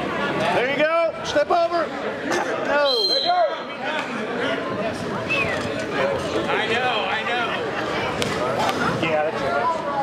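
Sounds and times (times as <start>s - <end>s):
voices calling out in a gym: 0.0s - 10.0s.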